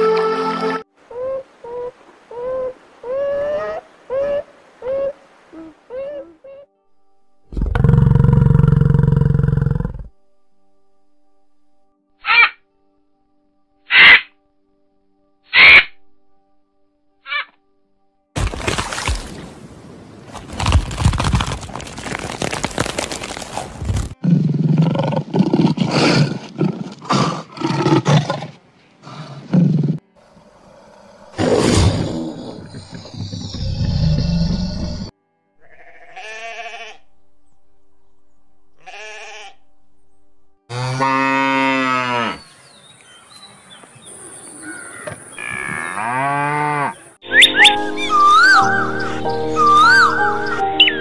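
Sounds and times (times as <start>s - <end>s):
dense crackling noise: 20.3s - 24.2s
sheep bleating: 35.6s - 37.0s, 38.8s - 39.6s.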